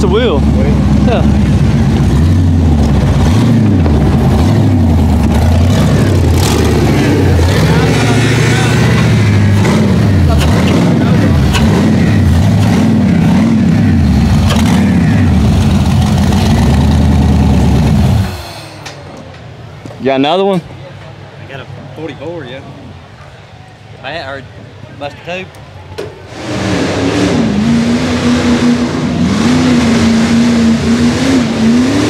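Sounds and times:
buggy engine revving hard: 0.0s - 18.5s, 26.3s - 32.0s.

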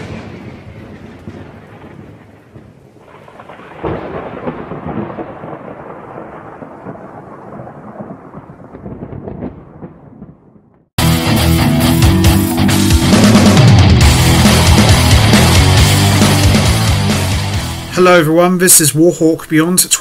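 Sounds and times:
rain: 0.0s - 10.3s
thunder rolling: 0.0s - 11.0s.

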